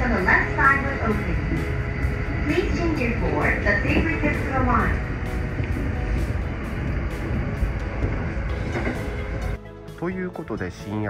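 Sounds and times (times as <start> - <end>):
train rumbling on track: 0.0 - 10.9
background music: 0.0 - 11.0.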